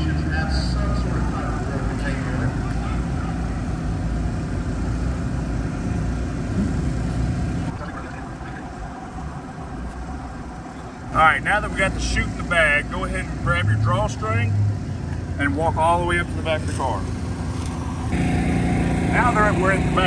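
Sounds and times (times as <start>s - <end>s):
steady low rumble: 0.0s - 20.0s
faint voices: 7.7s - 12.2s.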